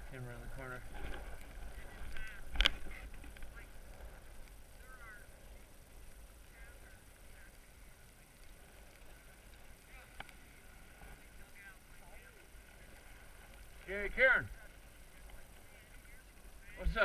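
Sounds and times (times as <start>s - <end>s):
faint distant voices: 0.0s - 17.0s
low steady rumble: 0.0s - 17.0s.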